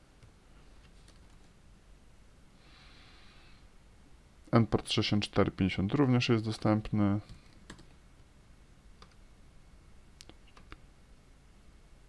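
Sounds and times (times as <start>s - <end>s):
keyboard keystrokes: 7.4s - 8.0s.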